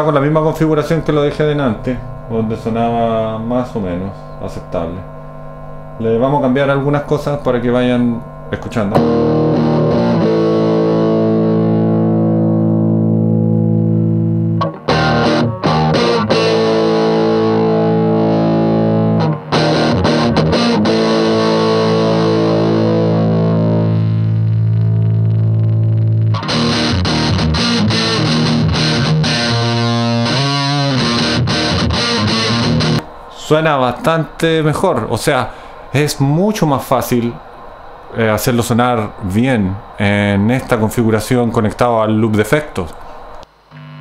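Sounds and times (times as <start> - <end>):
distorted electric guitar: 8.2 - 33.4, 42.8 - 44.0.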